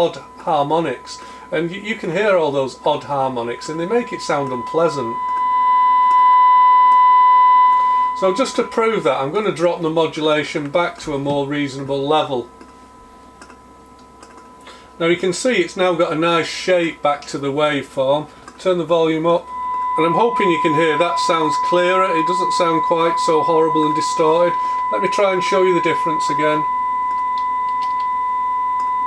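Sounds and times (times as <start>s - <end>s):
faint steady test tone: 0.0s - 29.0s
soft clicks: 27.1s - 28.1s.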